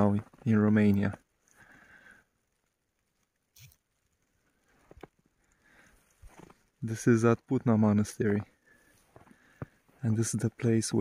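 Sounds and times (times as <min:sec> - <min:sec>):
footsteps crunching in snow: 0:06.1 - 0:06.7.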